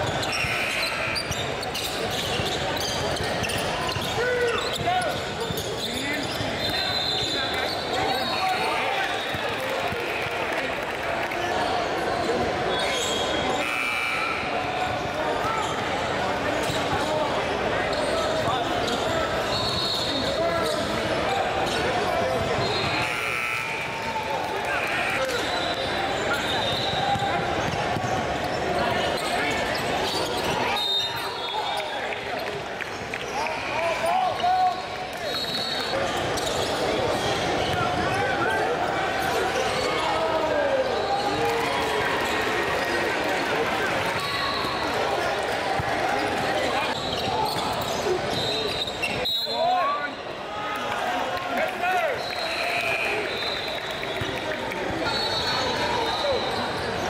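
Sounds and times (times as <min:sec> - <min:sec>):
sneakers squeaking: 0:00.0 - 0:24.2, 0:24.8 - 0:33.3, 0:34.0 - 0:43.0, 0:43.8 - 0:50.3, 0:52.1 - 0:57.0
people talking and calling out: 0:00.0 - 0:57.0.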